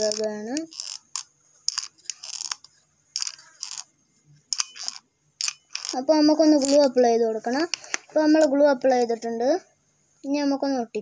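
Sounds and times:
glue gun trigger clicks and rasps: 0:00.0 - 0:03.9, 0:04.6 - 0:06.0.

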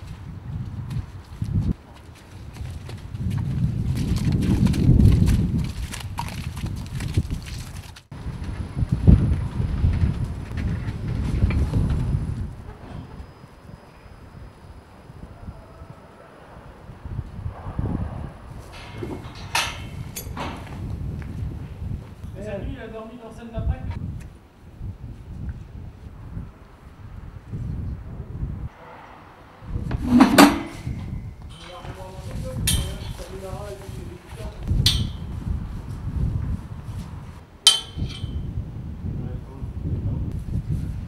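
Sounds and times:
horse hooves on ground: 0:00.0 - 0:13.4
heavy low rumbling noise: 0:08.1 - 0:22.4, 0:25.6 - 0:36.9.

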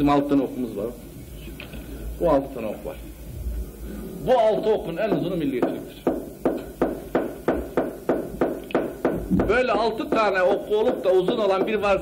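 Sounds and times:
rhythmic knocking: 0:04.9 - 0:12.0.

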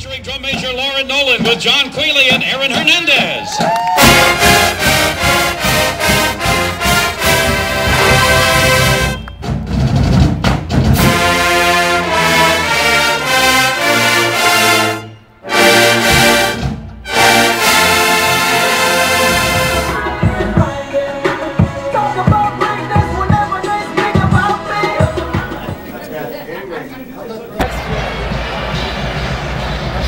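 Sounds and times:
brass band playing: 0:03.9 - 0:29.8.

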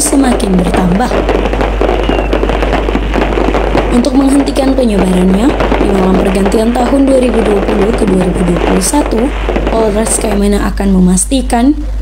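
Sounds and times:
fireworks popping and crackling: 0:00.0 - 0:11.7.

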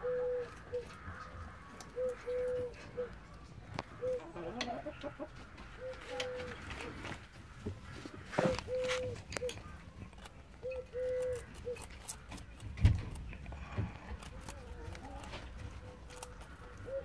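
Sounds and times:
bird calling: 0:00.0 - 0:07.0, 0:07.9 - 0:12.6, 0:13.6 - 0:17.0.

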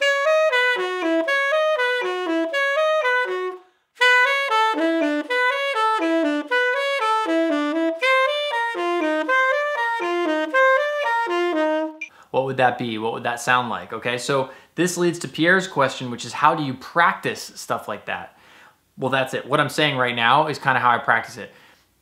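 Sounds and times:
tenor saxophone playing jazz: 0:00.0 - 0:12.0.

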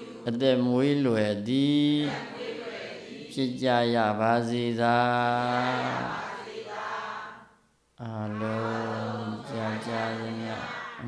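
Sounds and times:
man chanting in low voice: 0:00.0 - 0:02.3, 0:03.3 - 0:06.1, 0:08.0 - 0:10.8.

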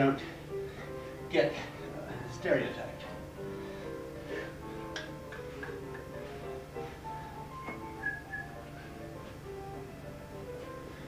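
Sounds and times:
ragtime piano music: 0:00.0 - 0:11.0.

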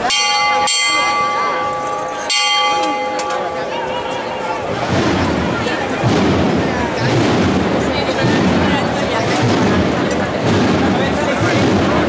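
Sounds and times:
hand bell ringing: 0:00.0 - 0:04.6
crowd murmuring: 0:00.0 - 0:12.0.

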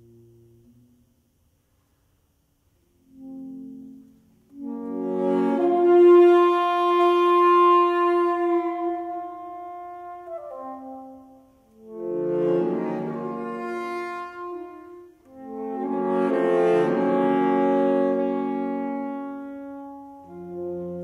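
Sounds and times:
saxophone quartet chords: 0:03.0 - 0:21.0.

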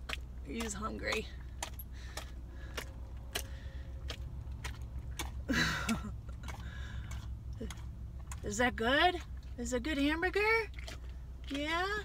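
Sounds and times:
dog chewing with wet clicks: 0:00.0 - 0:12.0.

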